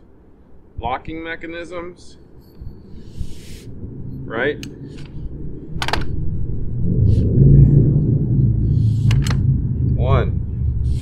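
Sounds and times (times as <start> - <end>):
low rumble: 2.2 - 11.0.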